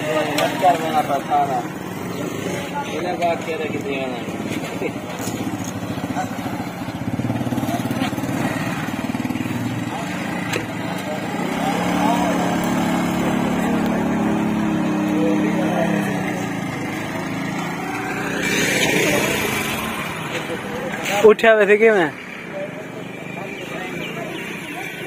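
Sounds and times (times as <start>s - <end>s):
small motorcycle engine running: 0.0s - 21.1s
voices: 0.0s - 25.0s.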